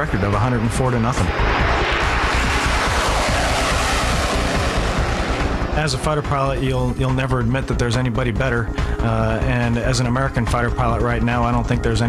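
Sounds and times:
fighter jet flying past: 0.0 - 9.0.

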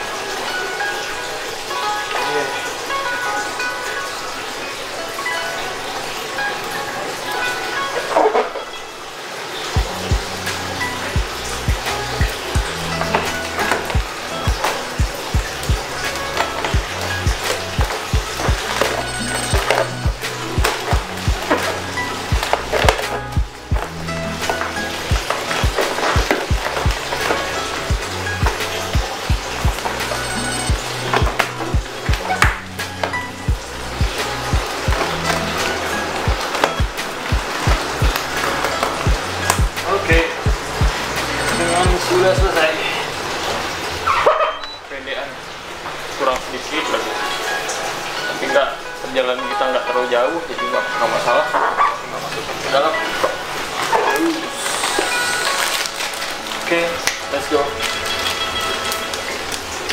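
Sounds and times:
music with steady beat: 9.7 - 42.6.

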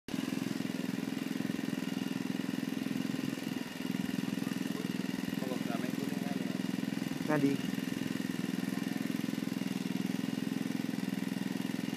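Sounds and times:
small engine running: 0.1 - 11.9.

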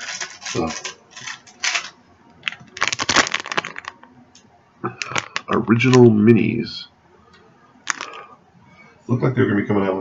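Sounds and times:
plastic package crinkling: 0.0 - 4.1, 5.0 - 6.0, 7.9 - 8.2.

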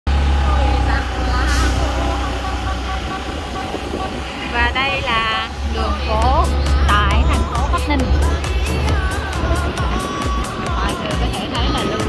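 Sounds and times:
vehicle rumble: 0.1 - 12.0
faint voices: 0.3 - 12.0.

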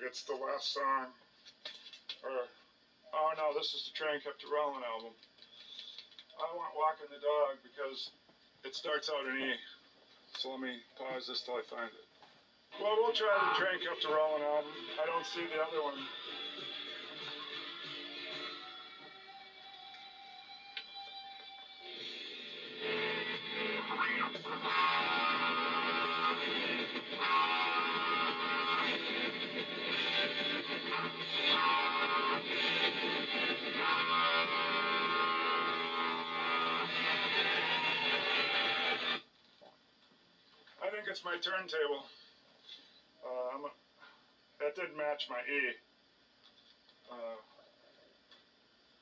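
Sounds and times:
rock music with electric guitar: 13.2 - 39.2.

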